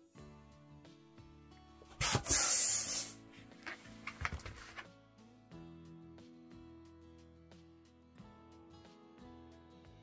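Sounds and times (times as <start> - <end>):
balloon pump hissing: 2.0 - 3.2
hands squeaking on balloon: 2.0 - 3.2.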